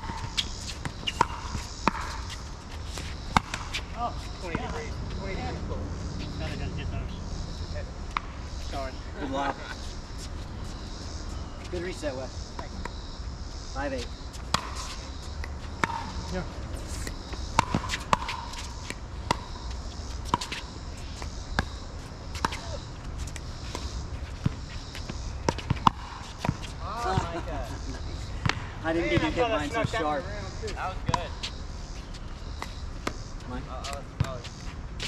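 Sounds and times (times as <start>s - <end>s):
ball bouncing on hard court: 0.0s - 3.8s, 14.5s - 16.4s, 17.0s - 20.6s, 21.2s - 27.3s, 33.8s - 34.5s.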